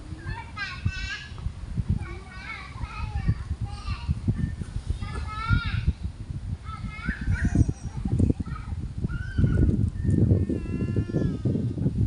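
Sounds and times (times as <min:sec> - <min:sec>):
child calling out: 0:06.8 - 0:11.7.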